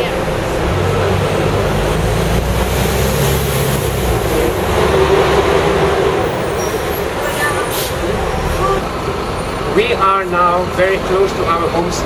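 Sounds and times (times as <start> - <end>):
bus engine running: 0.0 - 12.0
road and street noise: 0.0 - 12.0.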